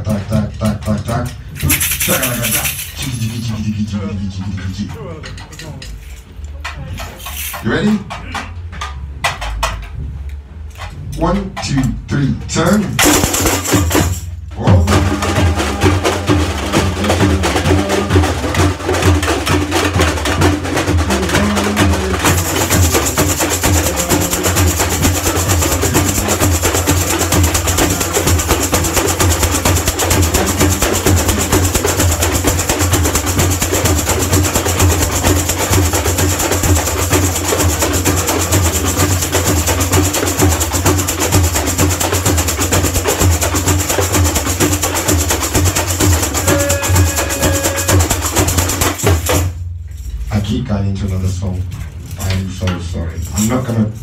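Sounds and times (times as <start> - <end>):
metal shakers rattling: 0.9 - 10.0, 13.0 - 54.0
low drum beat: 11.2 - 50.7.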